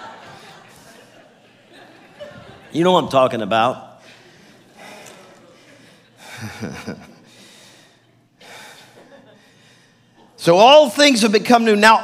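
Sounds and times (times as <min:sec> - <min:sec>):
faint breathing: 0:04.0 - 0:10.3
man gasping laughter: 0:06.2 - 0:07.5.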